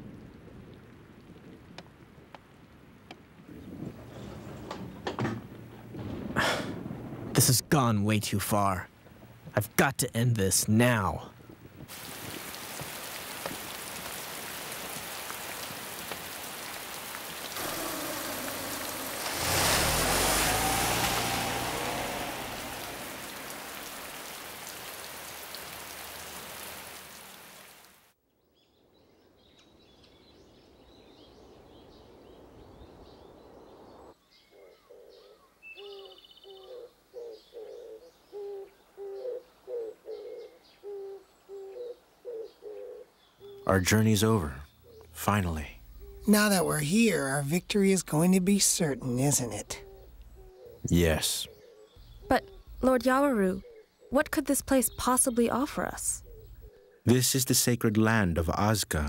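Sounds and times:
heavy rain: 0:00.0 - 0:09.5, 0:11.8 - 0:28.2, 0:43.8 - 0:49.8
doves cooing: 0:12.2 - 0:27.0, 0:34.6 - 0:43.7
low passing rumble: 0:17.5 - 0:25.3.

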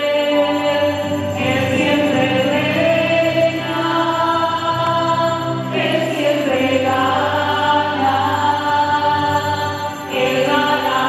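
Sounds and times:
group singing a slow hymn: 0:00.0 - 0:11.0.

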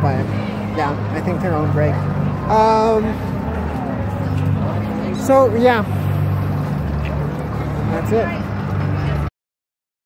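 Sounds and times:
outdoor background noise: 0:00.0 - 0:09.3.

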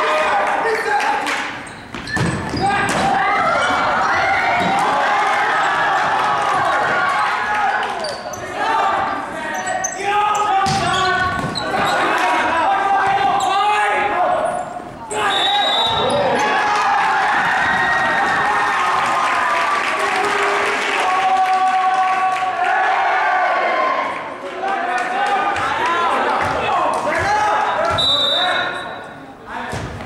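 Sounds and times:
people shouting and calling: 0:02.5 - 0:28.8
volleyball being hit: 0:10.6 - 0:11.6.

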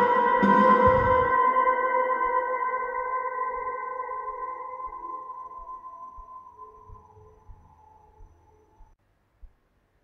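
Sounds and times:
sustained electric guitar note: 0:00.0 - 0:01.4.

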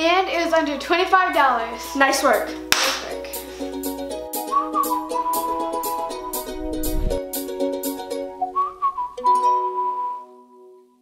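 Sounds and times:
outro music: 0:02.6 - 0:09.8
whistled melody: 0:03.7 - 0:11.0.

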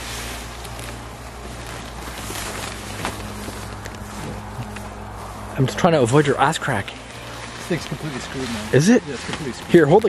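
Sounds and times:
faint crackles: 0:00.0 - 0:10.0
tent fabric rustling: 0:00.0 - 0:10.0.

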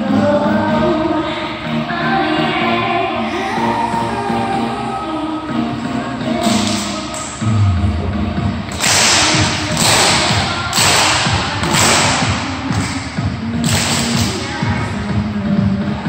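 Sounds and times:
music: 0:00.0 - 0:16.0
clapping and stomping thuds: 0:08.7 - 0:14.4.

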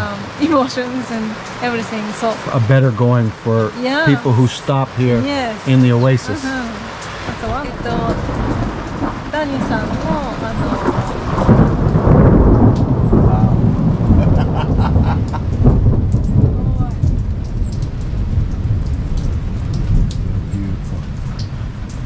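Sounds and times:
heavy low rumble: 0:00.0 - 0:22.0
rain on canvas awning: 0:00.0 - 0:22.0.

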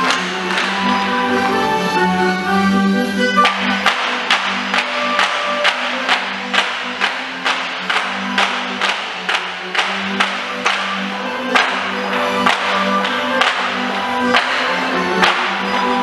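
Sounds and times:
wooden clogs clapped together: 0:00.0 - 0:01.1, 0:03.4 - 0:16.0
folk dance tune: 0:00.0 - 0:16.0.

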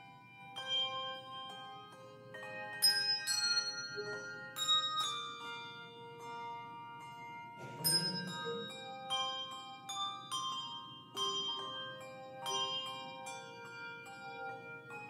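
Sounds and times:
handbell choir playing: 0:00.0 - 0:15.0.

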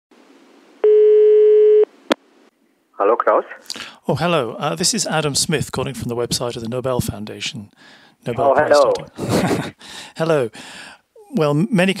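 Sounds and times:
telephone ringback tone: 0:00.8 - 0:01.9.

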